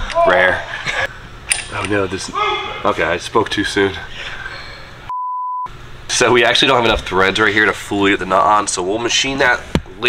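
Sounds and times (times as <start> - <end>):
high-pitched censor beep: 5.1 - 5.7.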